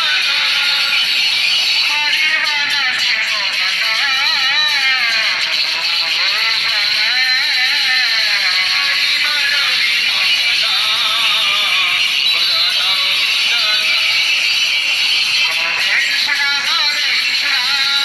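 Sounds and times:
person singing devotional melody: 0:00.0 - 0:18.0.

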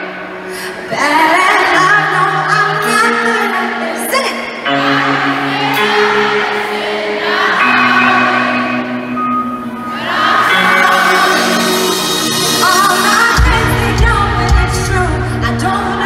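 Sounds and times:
men's chorus singing held chords: 0:04.7 - 0:13.4
crowd cheering: 0:07.2 - 0:13.5.

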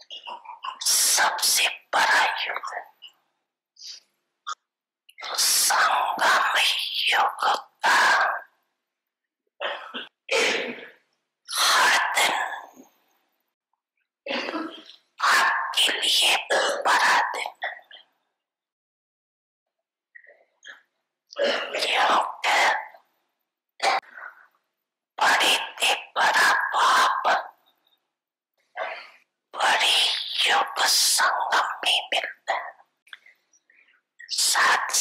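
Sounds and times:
woman's rough voice bursts: 0:00.1 - 0:03.0, 0:05.2 - 0:08.6, 0:11.5 - 0:12.8, 0:14.3 - 0:18.0, 0:21.4 - 0:23.0, 0:23.8 - 0:24.2, 0:25.2 - 0:27.6, 0:28.8 - 0:32.8, 0:34.3 - 0:35.0
woman speaking into a microphone: 0:25.2 - 0:27.4, 0:34.3 - 0:35.0.

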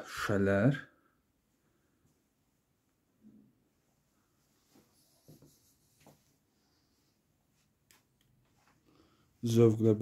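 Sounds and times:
faint rustling: 0:01.5 - 0:09.6.

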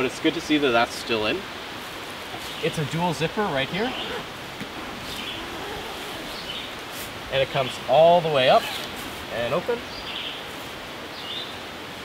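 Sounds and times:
steady woodland hiss: 0:00.0 - 0:12.0
faint bird calls: 0:03.5 - 0:06.9, 0:07.6 - 0:09.0.

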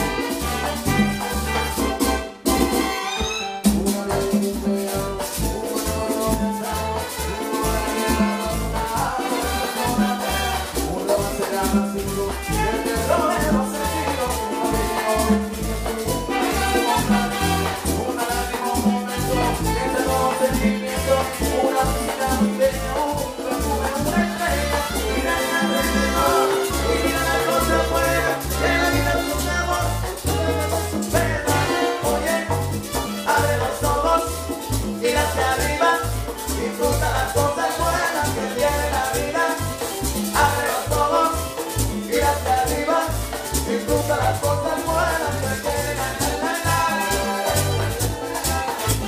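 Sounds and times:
congas: 0:00.0 - 0:49.0
salsa band playing: 0:00.0 - 0:49.0
saxophone: 0:00.0 - 0:49.0.

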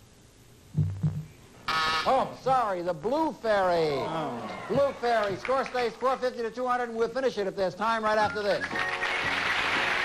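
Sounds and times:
game show buzzer: 0:01.7 - 0:02.4.

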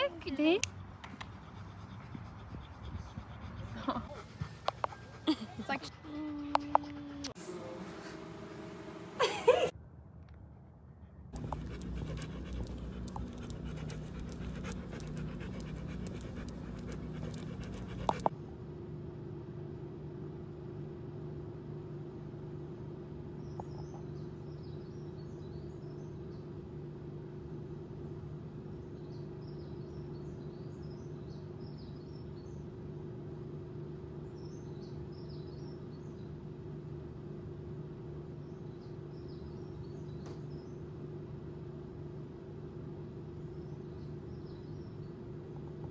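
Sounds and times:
steady low hum: 0:00.0 - 0:45.9
dog panting: 0:00.8 - 0:07.4, 0:11.4 - 0:18.3.

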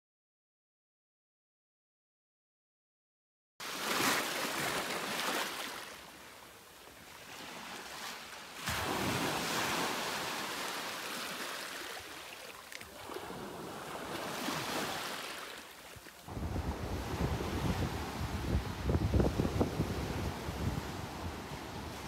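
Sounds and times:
small waves breaking on shore: 0:03.6 - 0:22.0
wind buffeting microphone: 0:16.3 - 0:22.0.

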